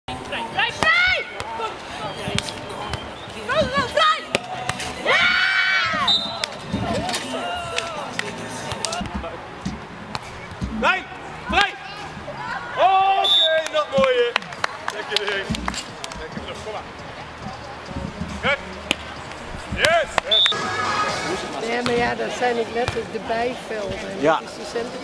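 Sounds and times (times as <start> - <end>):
players shouting: 2.9 - 9.2, 10.8 - 15.6
hands slapping volleyball: 7.7 - 9.3, 10.1 - 10.7.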